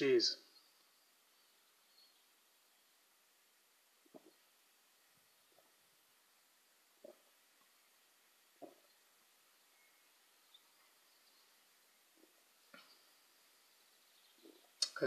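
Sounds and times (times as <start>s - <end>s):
man gulping beer: 4.0s - 4.4s.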